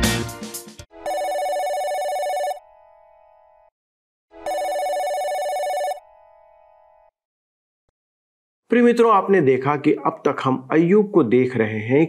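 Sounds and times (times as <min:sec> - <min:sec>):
music: 0:00.0 - 0:00.9
telephone ringing: 0:01.0 - 0:02.7, 0:04.4 - 0:06.2.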